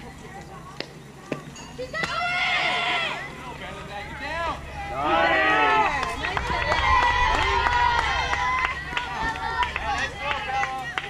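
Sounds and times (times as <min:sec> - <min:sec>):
girls shouting: 0:01.9 - 0:03.4.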